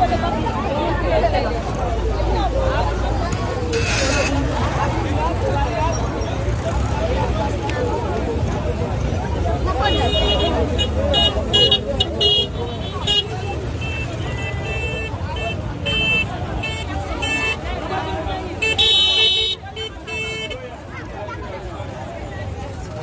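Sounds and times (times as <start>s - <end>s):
crowd chatter: 0.0s - 23.0s
low rumble of engines: 0.0s - 23.0s
vehicle horns honking: 3.7s - 4.6s, 9.7s - 20.7s.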